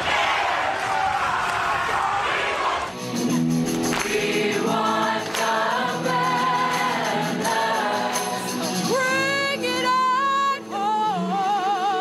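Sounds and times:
crowd of students shouting: 0:00.0 - 0:02.9
hand clapping: 0:03.6 - 0:04.4, 0:05.2 - 0:05.8
choir singing in unison: 0:03.8 - 0:09.0.

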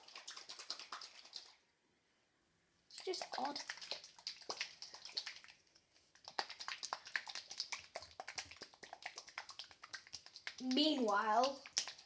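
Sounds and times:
liquid sloshing in shaker cup: 0:00.0 - 0:01.6, 0:03.0 - 0:12.0.

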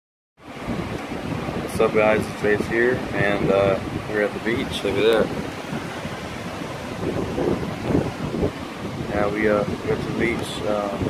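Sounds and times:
ocean surf: 0:00.4 - 0:11.0
wind buffeting microphone: 0:00.4 - 0:11.0.

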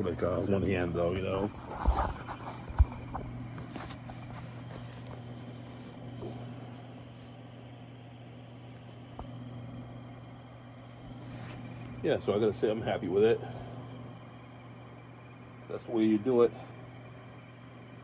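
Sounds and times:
steady low hum: 0:00.0 - 0:18.0
fabric rustling: 0:00.1 - 0:12.0.

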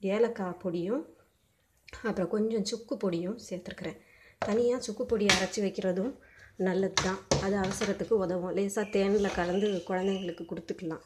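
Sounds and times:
woman speaking: 0:00.0 - 0:01.1, 0:01.9 - 0:11.0.

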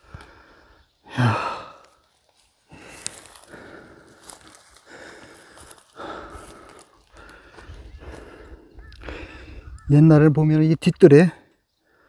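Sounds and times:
man sighing: 0:01.0 - 0:02.0.

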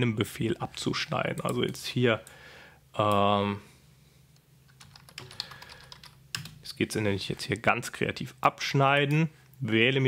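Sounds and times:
computer keyboard typing: 0:04.7 - 0:06.6.

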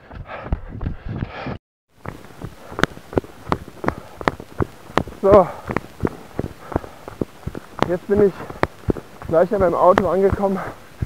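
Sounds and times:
running footsteps: 0:00.0 - 0:11.0.

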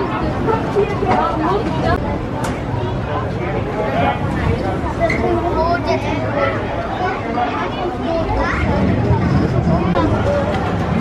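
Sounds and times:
children talking and calling out: 0:00.0 - 0:11.0
steady low rumble: 0:08.0 - 0:11.0.

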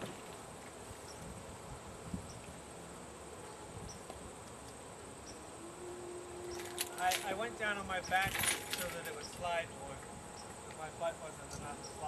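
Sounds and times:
high-pitched whine: 0:05.0 - 0:12.0.

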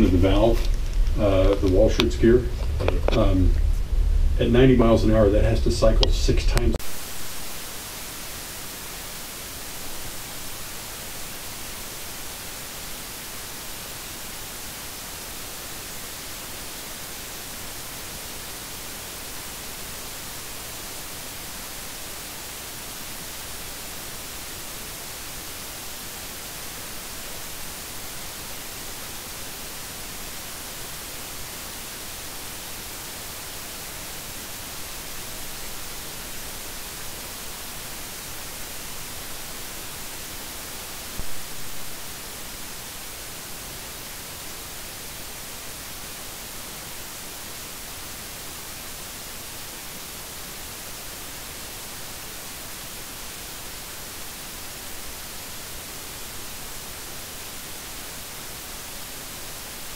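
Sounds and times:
steady hiss: 0:00.0 - 0:59.9.

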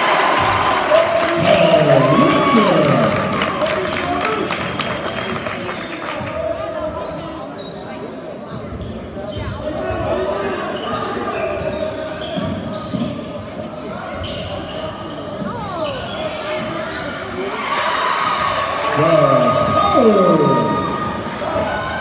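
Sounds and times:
spectators' voices echoing: 0:00.0 - 0:06.5, 0:18.4 - 0:22.0
sneaker squeaks: 0:06.9 - 0:09.6, 0:10.7 - 0:17.5.

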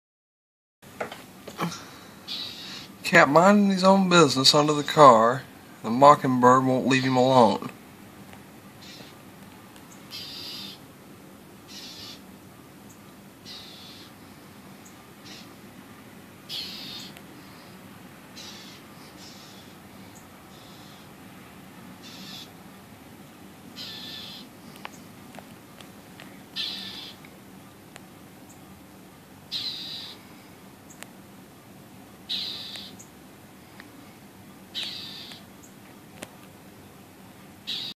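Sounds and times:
bird giving harsh scolding calls: 0:02.3 - 0:03.0, 0:08.8 - 0:09.2, 0:10.1 - 0:10.8, 0:11.7 - 0:12.3, 0:13.4 - 0:14.2, 0:15.2 - 0:15.6, 0:16.5 - 0:17.2, 0:18.4 - 0:19.8, 0:22.0 - 0:22.6, 0:23.8 - 0:24.5, 0:26.6 - 0:27.2, 0:29.5 - 0:30.2, 0:32.3 - 0:33.0, 0:34.7 - 0:35.5, 0:37.7 - 0:37.9.

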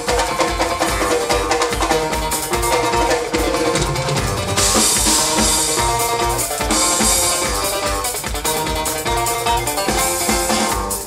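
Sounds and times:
drum kit steady beat: 0:00.0 - 0:11.0
strummed acoustic guitar: 0:00.0 - 0:11.0
upright double bass: 0:00.0 - 0:11.0.

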